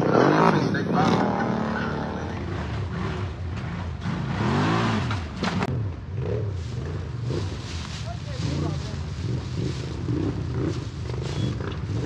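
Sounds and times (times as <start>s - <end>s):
quad engine revving: 0.0s - 7.6s, 8.4s - 12.0s.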